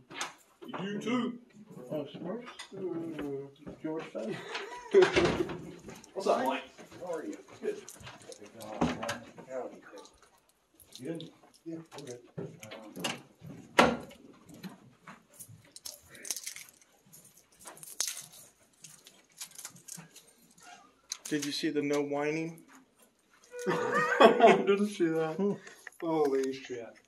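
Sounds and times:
small objects clicking and rattling: 0:05.6 - 0:13.4, 0:14.1 - 0:22.0.

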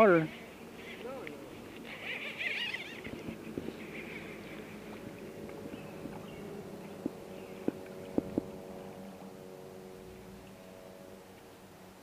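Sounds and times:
faint birdsong: 0:00.1 - 0:11.8
songbird warbling: 0:01.7 - 0:08.6.

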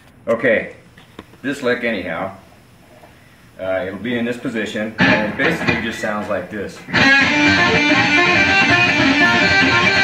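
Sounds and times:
electric guitar blues-rock lick: 0:05.0 - 0:06.0, 0:06.9 - 0:10.0.

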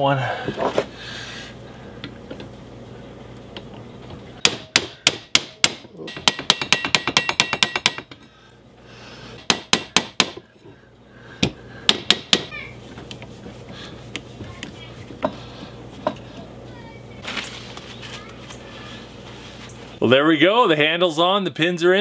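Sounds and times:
hammer tapping metal pins: 0:04.5 - 0:08.2.

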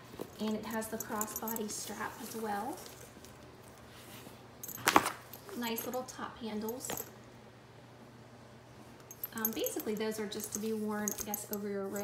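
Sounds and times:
leather bag handling: 0:00.0 - 0:06.0, 0:09.1 - 0:12.0.

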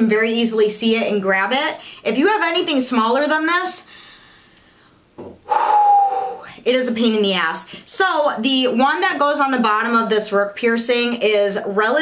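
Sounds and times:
woman breathing in: 0:03.9 - 0:06.6
forceful breath blown out: 0:05.4 - 0:06.6.

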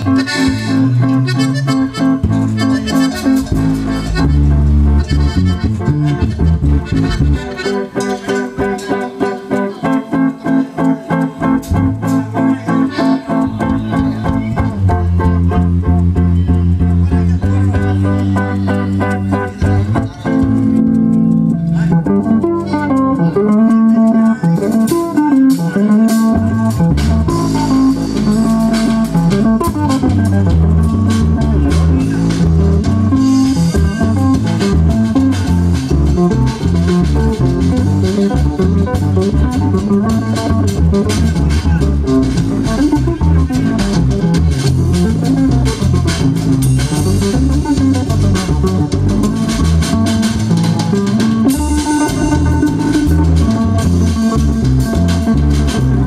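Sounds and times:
accordion melody: 0:00.0 - 0:56.0
bass line: 0:00.0 - 0:56.0
guitar strumming: 0:00.0 - 0:56.0.

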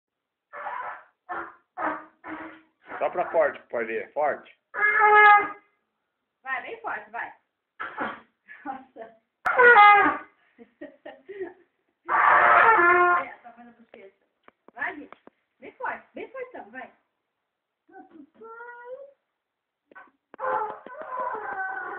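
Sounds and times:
child blowing into a trumpet: 0:00.5 - 0:03.1, 0:09.5 - 0:10.3, 0:12.1 - 0:13.3, 0:20.0 - 0:21.9
trumpet blast: 0:09.5 - 0:10.2, 0:12.1 - 0:13.2.

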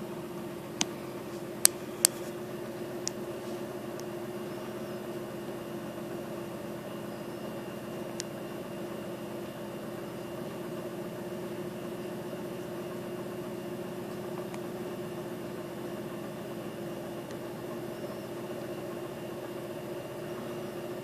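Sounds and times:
mechanical hum with hiss: 0:00.0 - 0:21.0.

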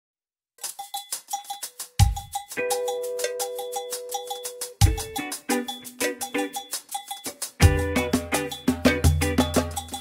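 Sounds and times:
bell-like struck instrument pattern: 0:00.6 - 0:10.0
deep drum beat: 0:01.8 - 0:02.5, 0:04.8 - 0:05.2, 0:07.6 - 0:10.0.

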